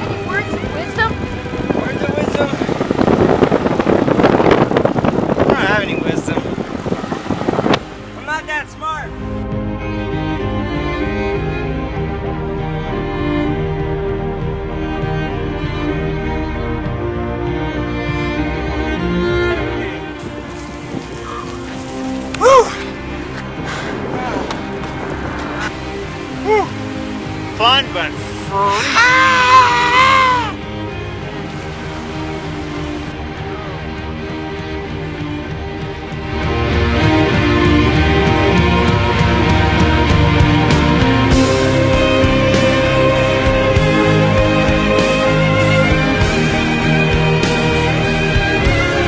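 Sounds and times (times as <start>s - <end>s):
wind buffeting: 0.0s - 14.7s, 18.4s - 47.3s
background music: 0.0s - 49.0s
road noise from moving car: 0.0s - 49.0s
voices calling: 20.1s - 30.6s
person whooping: 22.4s - 22.9s, 26.4s - 26.7s, 28.6s - 30.6s.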